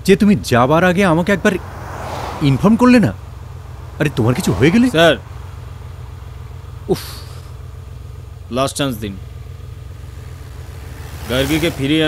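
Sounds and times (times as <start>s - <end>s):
person speaking: 4.0s - 5.2s.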